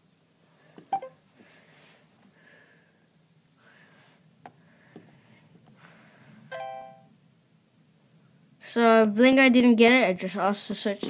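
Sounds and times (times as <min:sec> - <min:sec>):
electronic chime from phone speaker: 0:06.5 - 0:07.1.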